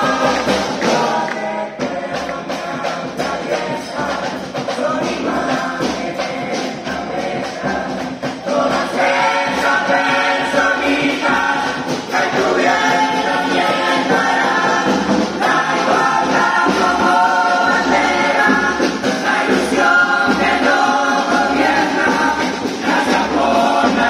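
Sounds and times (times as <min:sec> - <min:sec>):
chorus of young voices singing: 0:00.0 - 0:24.0.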